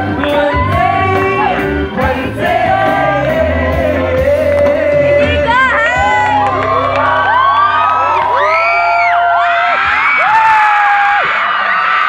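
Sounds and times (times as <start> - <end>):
held chord of backing music: 0.0 - 9.2
audience screaming and cheering: 0.0 - 12.0.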